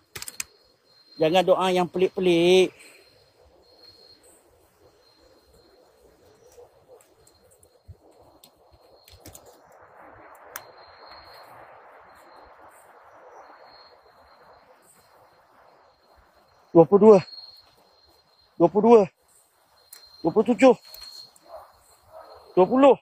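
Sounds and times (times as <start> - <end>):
small clicks: 0.0 - 0.6, 8.4 - 9.6
high insect tone: 0.0 - 23.0.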